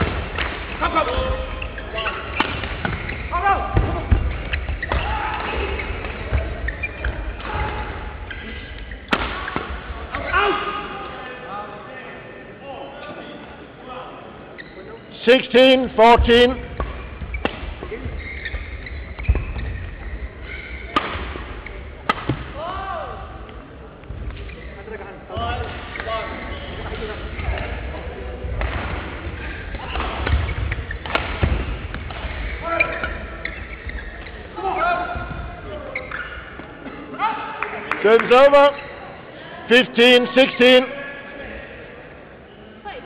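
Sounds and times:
voices around hall: 0.0 - 43.0
shoes squeaking on court: 0.8 - 10.3, 14.5 - 15.1, 16.1 - 22.4, 24.1 - 28.0, 29.4 - 36.8
rackets striking shuttlecock: 22.0 - 22.5.

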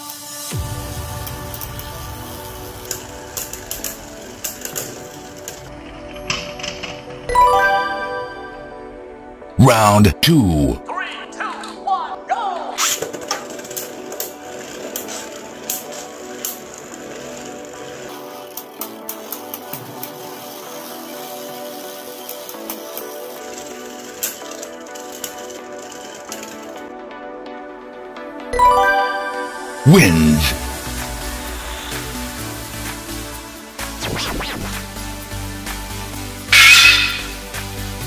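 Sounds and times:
background music: 0.0 - 38.0.

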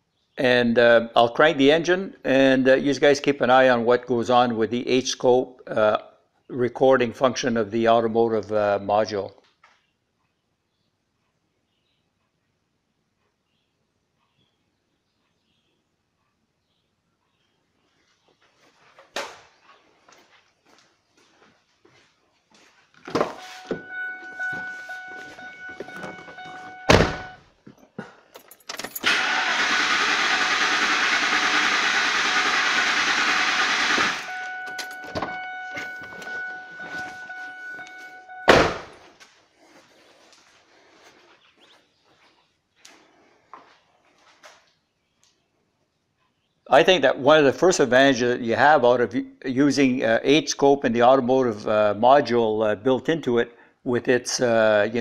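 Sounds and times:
steady warning tone: 23.3 - 27.4, 30.2 - 39.0
loud thump: 25.8 - 27.4, 38.4 - 39.0
engine cranking on starter: 28.9 - 36.5.

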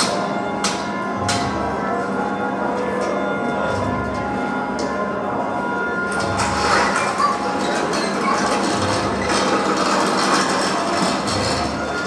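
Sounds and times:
sheet metal tearing and clanking: 6.1 - 12.0.

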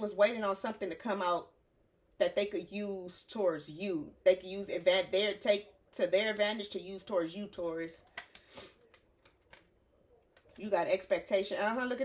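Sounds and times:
cards clicking: 7.6 - 9.7.

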